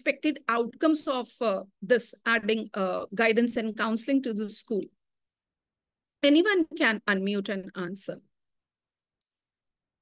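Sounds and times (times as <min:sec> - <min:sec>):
woman speaking: 0:00.0 - 0:05.0, 0:06.2 - 0:08.3.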